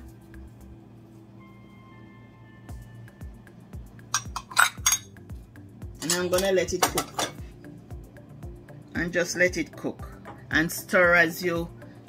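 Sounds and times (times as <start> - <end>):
background music with low beat: 0.0 - 12.0
spice containers clinking: 4.2 - 5.1.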